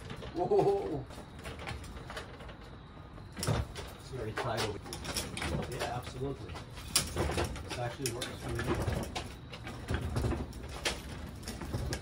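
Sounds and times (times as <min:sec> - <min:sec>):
casters rolling on concrete: 0:00.0 - 0:12.0.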